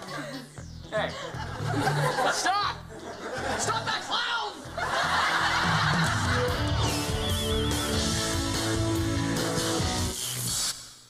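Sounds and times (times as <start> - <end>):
soundtrack music: 4.6 - 10.2.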